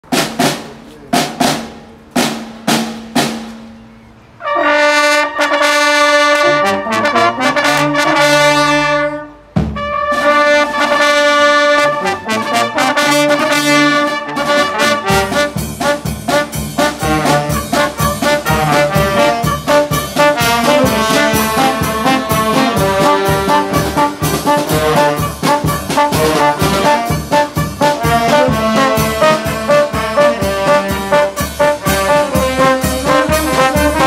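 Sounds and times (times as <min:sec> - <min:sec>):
drum strikes: 0:00.0 - 0:03.8, 0:09.5 - 0:10.4, 0:14.8 - 0:34.0
street wind band playing: 0:00.0 - 0:34.0.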